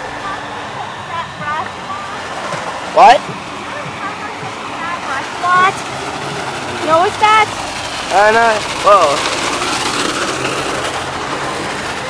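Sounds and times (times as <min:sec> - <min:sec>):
water spraying in a car wash: 0:00.0 - 0:12.0.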